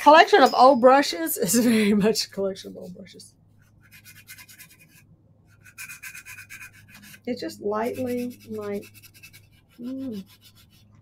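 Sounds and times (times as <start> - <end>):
faint low electrical hum: 0.0 - 11.0
hand scratching strokes: 3.6 - 11.0.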